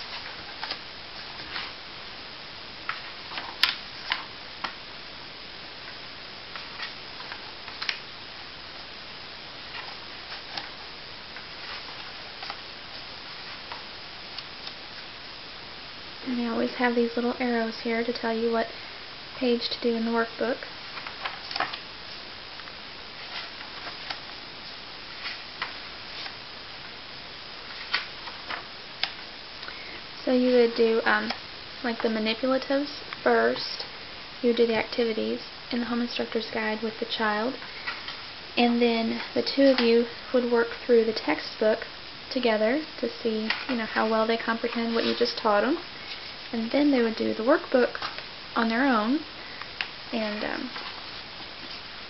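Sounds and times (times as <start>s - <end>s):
paper pages rustling: 0.0s - 1.8s, 2.9s - 4.8s, 6.5s - 8.0s, 9.6s - 14.8s, 20.8s - 22.2s, 23.2s - 26.4s, 27.6s - 29.2s, 43.4s - 46.5s
steady hiss: 0.0s - 52.0s
paper pages flicking: 2.9s - 4.8s, 6.5s - 8.1s, 20.9s - 21.8s, 23.2s - 24.4s, 27.7s - 29.2s.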